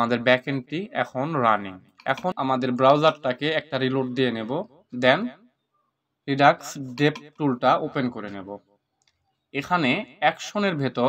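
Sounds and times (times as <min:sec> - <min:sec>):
man speaking: 0:00.0 - 0:05.3, 0:06.3 - 0:08.6, 0:09.6 - 0:11.0.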